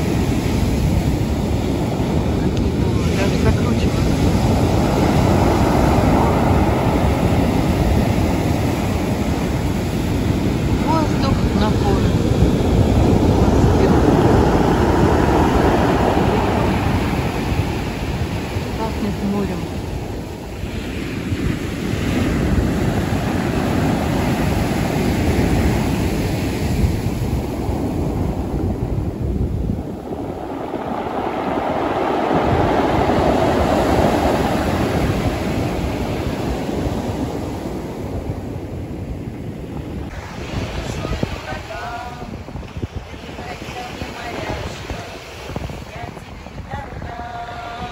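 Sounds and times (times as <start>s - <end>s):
waves breaking on pebble beach: 0.0s - 39.0s.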